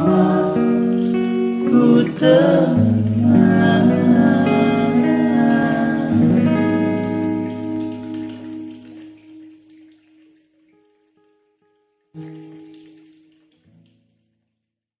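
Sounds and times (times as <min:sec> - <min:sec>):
acoustic guitar chords and notes: 0:00.0 - 0:14.1.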